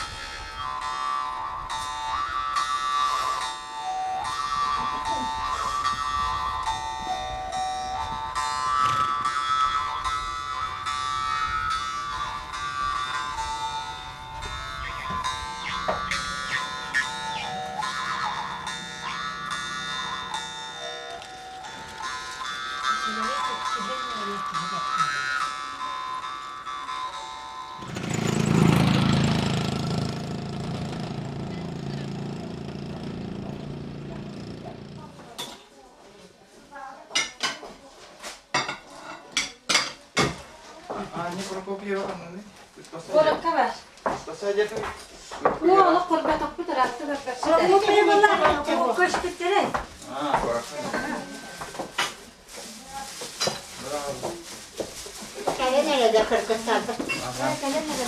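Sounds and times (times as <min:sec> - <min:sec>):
jaw harp playing: 0:00.0 - 0:35.0.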